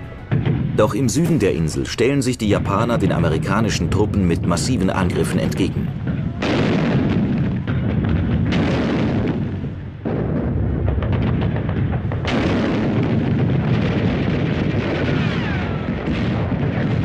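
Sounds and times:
deep battle rumble: 0:00.0 - 0:17.0
loud artillery blasts: 0:00.0 - 0:17.0
gunfire: 0:06.0 - 0:17.0.

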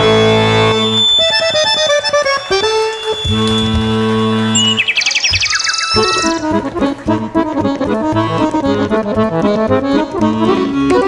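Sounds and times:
accordion duet: 0:00.0 - 0:11.0.

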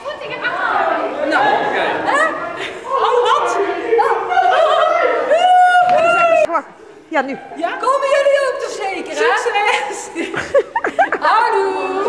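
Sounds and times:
crowd chattering in a hall: 0:00.0 - 0:12.0.

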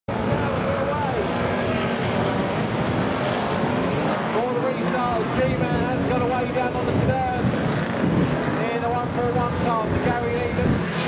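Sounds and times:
racing car engines revving: 0:00.1 - 0:11.0.

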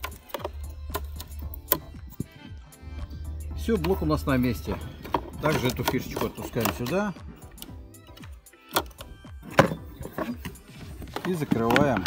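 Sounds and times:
sharp plastic clicks: 0:00.0 - 0:02.3
faint background music: 0:00.0 - 0:12.0.

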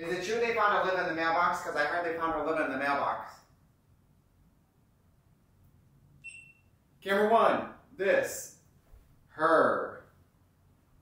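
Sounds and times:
short high-pitched beep: 0:06.2 - 0:06.7.

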